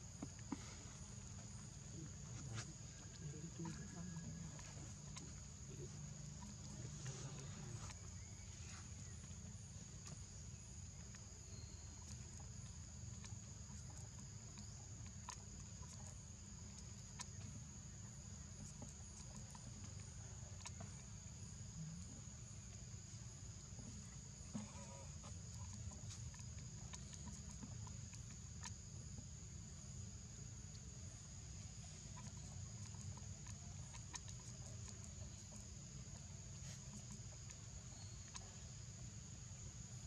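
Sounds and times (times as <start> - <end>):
insects droning: 0.0 - 40.0
light ticks or rustles: 0.0 - 40.0.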